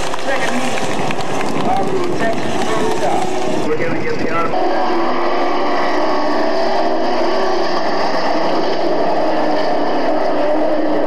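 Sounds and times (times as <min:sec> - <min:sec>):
steady background din: 0:00.0 - 0:11.0
people talking indistinctly: 0:00.2 - 0:04.8.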